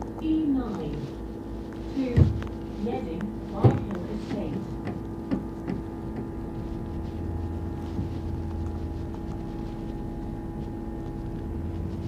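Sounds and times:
bus interior hum: 0.0s - 12.0s
low rumble: 5.8s - 12.0s.

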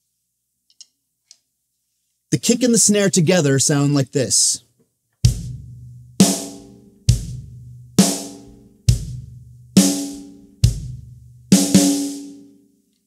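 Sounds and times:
kick drum: 5.3s - 6.1s, 7.1s - 9.6s, 10.6s - 11.4s
snare drum crack: 11.5s - 12.4s.

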